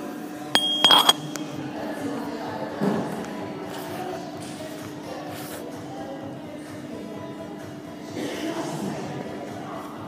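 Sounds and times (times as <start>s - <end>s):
sharp knocks and clinks: 0.6s - 1.6s
short high ring: 0.6s - 1.6s.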